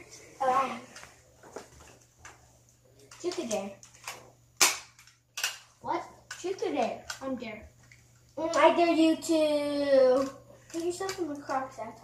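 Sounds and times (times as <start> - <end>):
plastic toy clicks and rustles: 3.0 - 5.7, 10.0 - 12.0.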